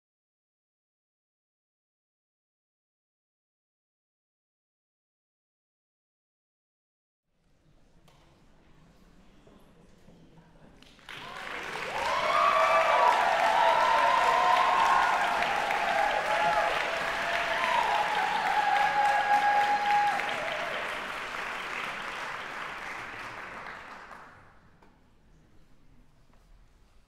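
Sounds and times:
audience applauding: 10.9s - 24.5s.

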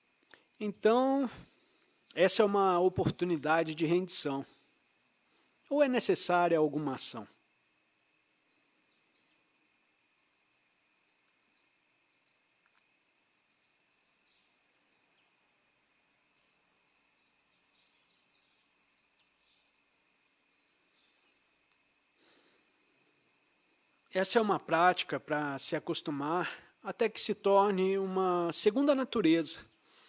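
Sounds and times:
faint steady high whine: 0.0s - 30.0s.

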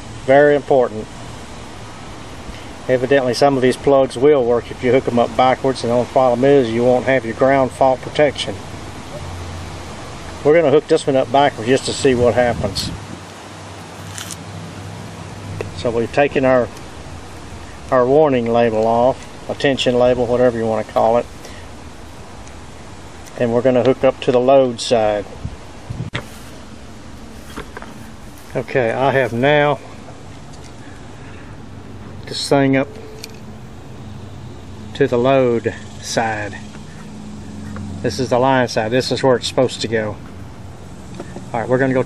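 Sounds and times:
steady low hum: 0.0s - 42.0s
paper label peeling off: 14.0s - 14.4s.

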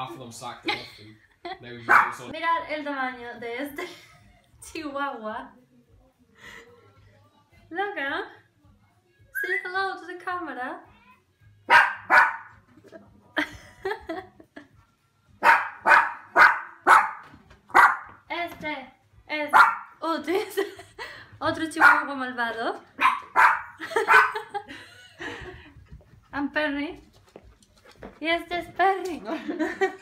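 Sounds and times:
dog barking: 1.9s - 2.3s, 11.7s - 12.6s, 15.4s - 18.2s, 19.5s - 20.0s, 21.8s - 22.1s, 23.0s - 24.5s.

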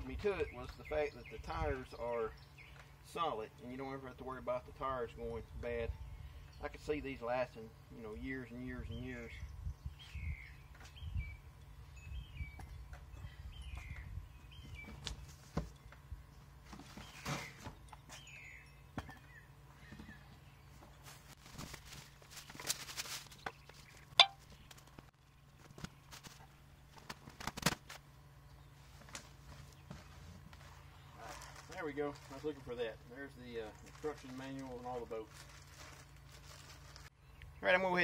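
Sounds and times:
cardboard and plastic rustling: 16.6s - 18.3s, 19.9s - 28.0s, 28.8s - 32.8s, 33.6s - 37.1s.

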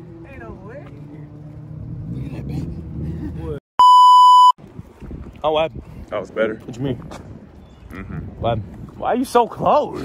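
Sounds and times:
low street background: 0.0s - 3.6s
bleep tone: 3.8s - 4.6s.

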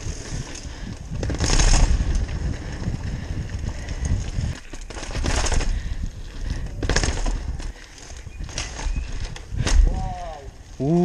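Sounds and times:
mountain bike rattling on steps: 0.0s - 10.6s.

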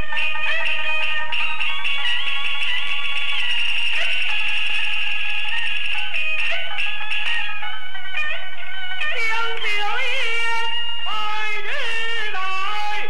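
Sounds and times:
opera singing with fiddle: 9.2s - 13.0s.

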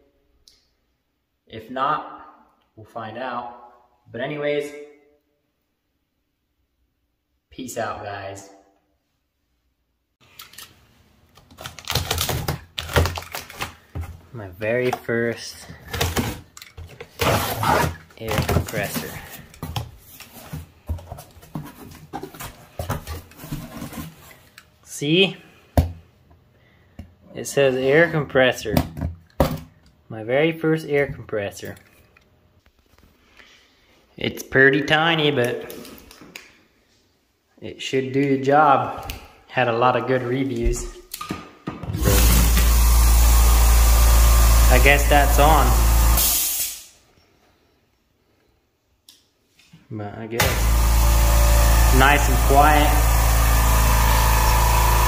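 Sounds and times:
cardboard and paper rustling: 15.6s - 24.6s
air compressor motor: 42.0s - 46.9s, 50.4s - 55.0s
air hiss: 46.2s - 47.0s.

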